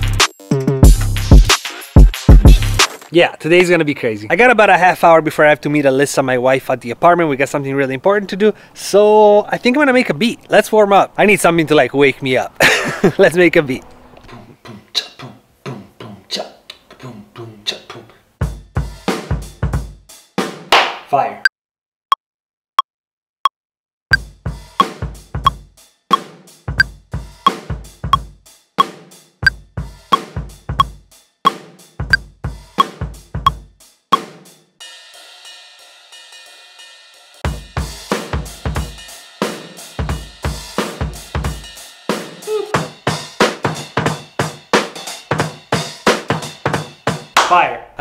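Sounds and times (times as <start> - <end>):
drum kit groove: 0.0 - 3.6, 18.4 - 20.7, 24.1 - 47.6
metronome ticks: 28.1 - 34.2.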